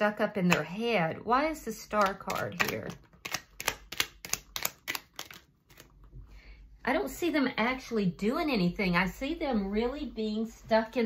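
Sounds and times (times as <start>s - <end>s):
cards being shuffled: 2.0s - 6.1s.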